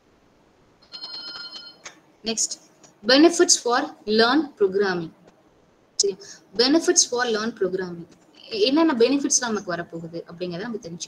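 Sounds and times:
high-pitched ringing tone: 0:00.8 - 0:01.8.

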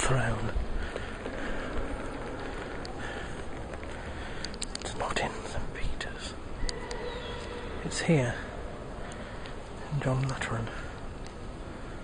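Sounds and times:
church interior low rumble: 0:00.1 - 0:12.0.

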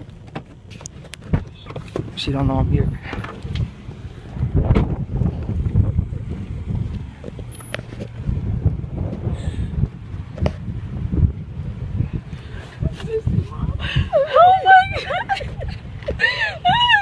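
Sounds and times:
low rumbling microphone noise: 0:00.0 - 0:17.0.

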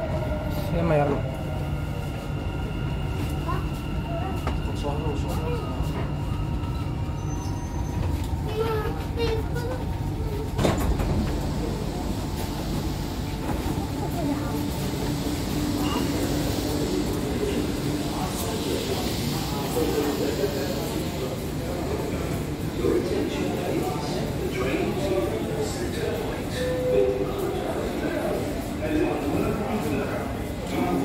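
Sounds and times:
passengers' voices: 0:00.0 - 0:31.0
train running hum with whine: 0:00.0 - 0:31.0.

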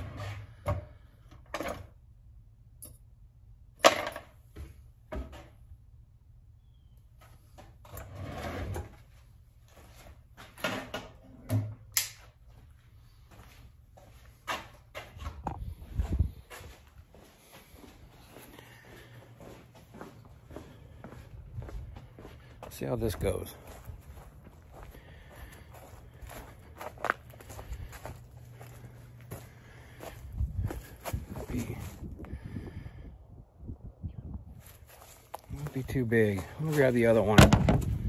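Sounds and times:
tools clattering on a workbench: 0:03.8 - 0:04.4.

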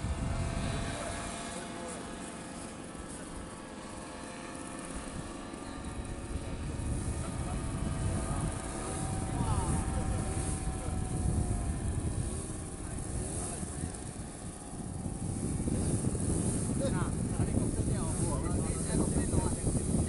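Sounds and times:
distant paramotor droning: 0:00.0 - 0:20.0.

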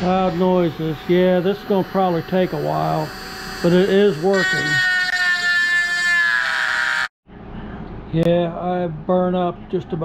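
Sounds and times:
rotary tool grinding metal: 0:00.2 - 0:06.6.

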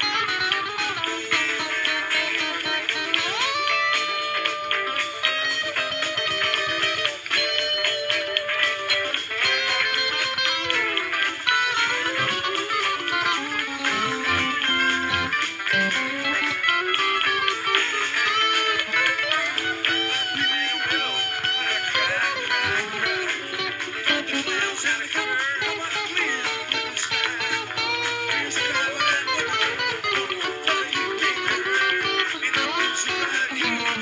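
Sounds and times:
guitar lead with bending notes: 0:00.0 - 0:34.0
strummed guitar chords: 0:00.0 - 0:34.0.

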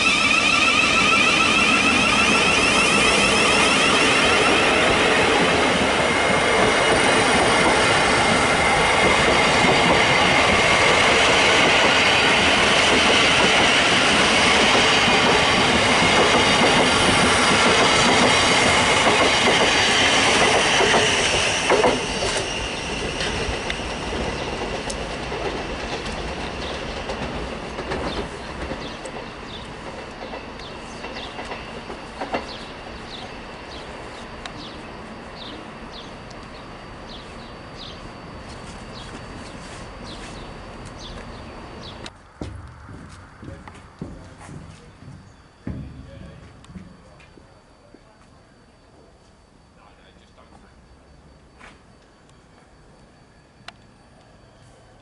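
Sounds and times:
high wavering whine: 0:00.0 - 0:11.1, 0:30.8 - 0:55.0
electric train passing: 0:00.0 - 0:55.0.

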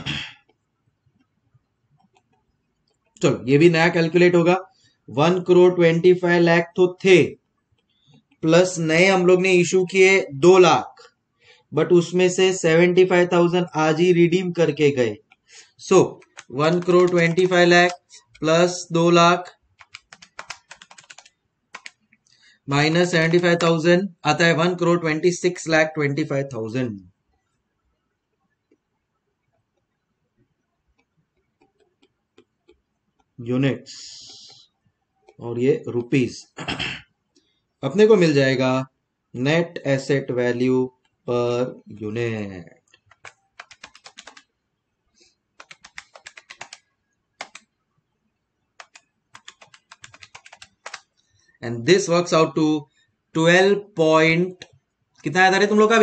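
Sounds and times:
calculator keys clicking: 0:16.1 - 0:18.5, 0:19.8 - 0:22.0, 0:42.9 - 0:44.5, 0:45.6 - 0:46.8, 0:47.4 - 0:47.6, 0:48.8 - 0:51.1.

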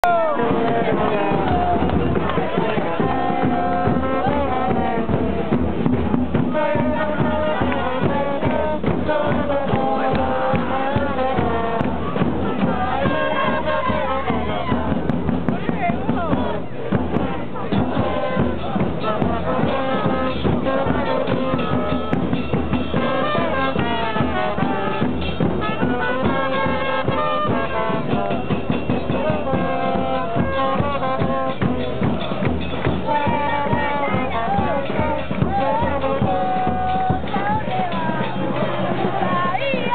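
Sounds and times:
brass band playing: 0:00.0 - 0:39.9
crowd voices: 0:00.0 - 0:39.9
drums: 0:00.0 - 0:39.9.

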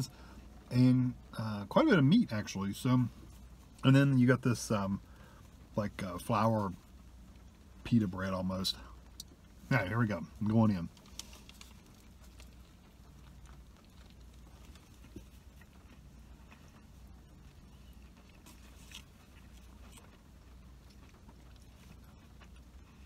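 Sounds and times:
low steady hum: 0:00.0 - 0:23.0
faint chewing: 0:10.4 - 0:23.0.

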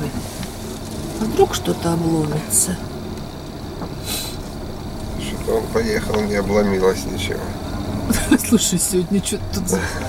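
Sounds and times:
car rolling over gravel: 0:00.0 - 0:10.0
short hiss: 0:04.0 - 0:04.5.

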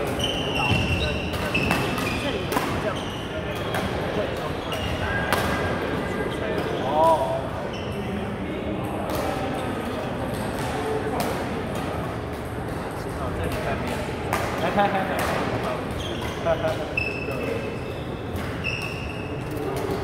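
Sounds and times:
shoe squeak: 0:00.0 - 0:05.2, 0:07.6 - 0:08.1, 0:15.9 - 0:19.8.

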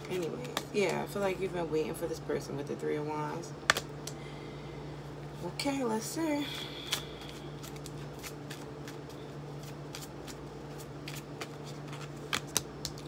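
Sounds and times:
cards being shuffled: 0:00.0 - 0:01.3, 0:06.8 - 0:13.0.

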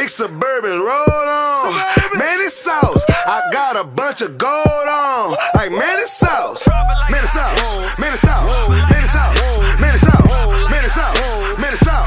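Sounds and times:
heavy bass: 0:06.7 - 0:12.0
hi-hats: 0:06.7 - 0:12.0.

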